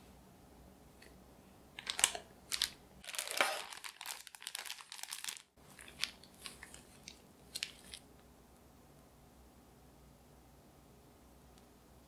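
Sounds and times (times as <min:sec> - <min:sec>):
plastic piping bag crinkling: 0:01.8 - 0:08.1.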